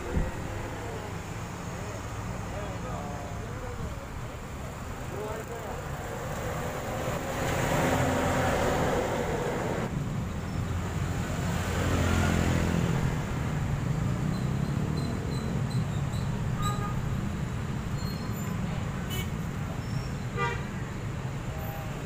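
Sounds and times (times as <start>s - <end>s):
vehicles driving past: 0.0s - 22.0s.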